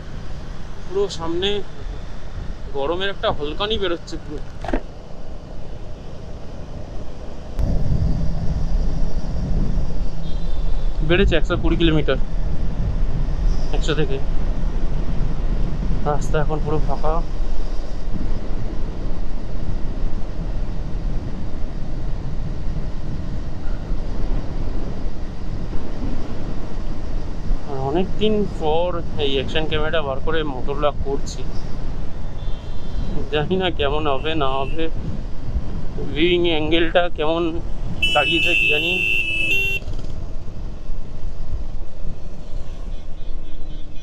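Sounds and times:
wind on microphone: 1.4s - 38.2s
vehicle horn: 10.2s - 11.0s, 32.4s - 33.1s, 34.1s - 34.9s, 38.0s - 39.9s, 42.4s - 44.0s.

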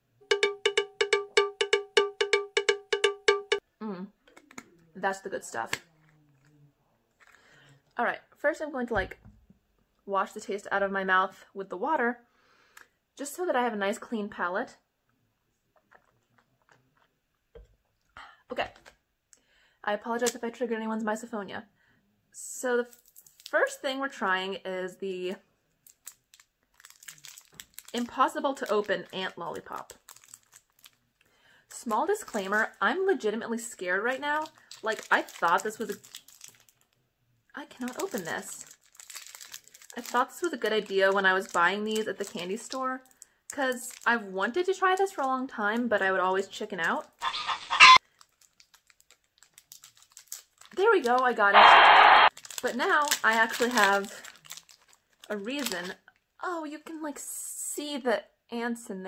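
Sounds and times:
rapid cowbell-like strikes: 0.3s - 3.6s
wrapper crinkling: 22.9s - 23.6s, 25.8s - 31.0s, 34.3s - 36.9s, 37.8s - 42.4s, 47.2s - 56.0s.

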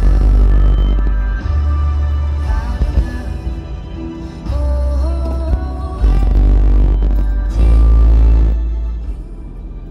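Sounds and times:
loud music with singing and bass: 0.0s - 9.9s.

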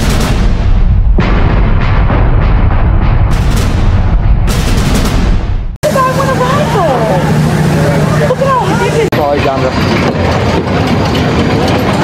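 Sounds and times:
people chattering: 5.8s - 9.2s
coaster cars rumbling on wooden track: 5.8s - 12.0s.

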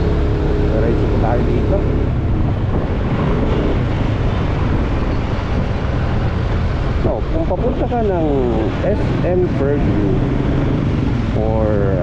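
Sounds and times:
wind rush on microphone: 0.0s - 12.0s.

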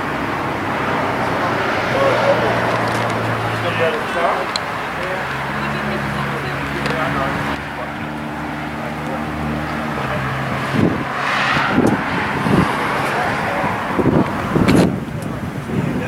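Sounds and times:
car engine idling and revving: 0.0s - 16.0s.

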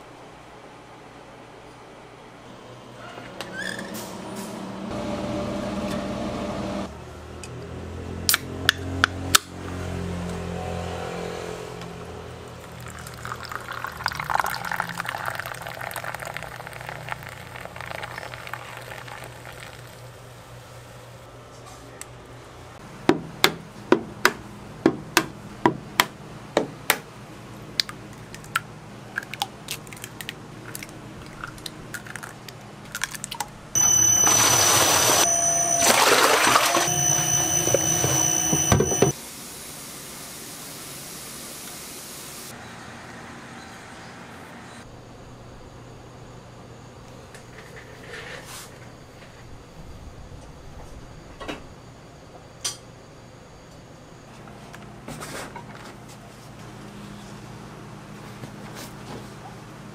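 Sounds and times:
drink fizzing from a can: 12.7s - 20.1s
machine with high whine: 33.8s - 40.6s.

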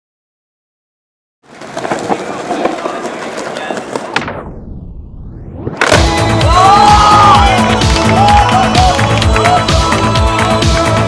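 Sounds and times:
skateboard wheels rolling on stone: 1.4s - 4.3s
onlookers chattering: 2.0s - 4.2s
music: 5.8s - 11.0s.

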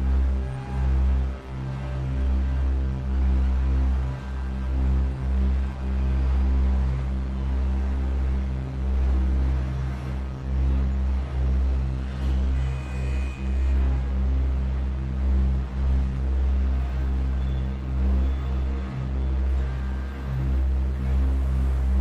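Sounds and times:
dark ambient synth music: 0.0s - 22.0s.

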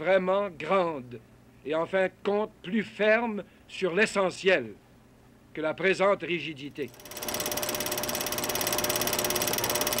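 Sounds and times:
mechanical whirring clatter: 6.8s - 10.0s.

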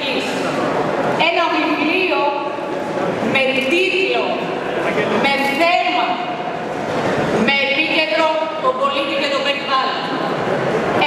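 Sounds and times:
woman giving a speech: 0.0s - 0.6s, 1.2s - 4.6s, 5.2s - 6.5s, 7.4s - 10.3s.

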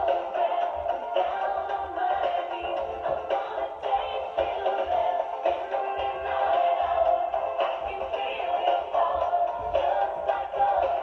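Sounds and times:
pop song with sung vocal: 0.0s - 11.0s.

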